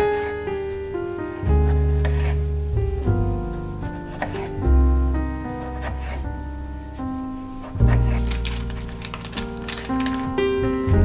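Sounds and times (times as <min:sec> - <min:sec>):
background music with bass: 0:01.2 - 0:08.3, 0:10.3 - 0:11.0
knife slicing tomato on board: 0:01.6 - 0:02.4, 0:04.1 - 0:04.6, 0:05.8 - 0:06.2.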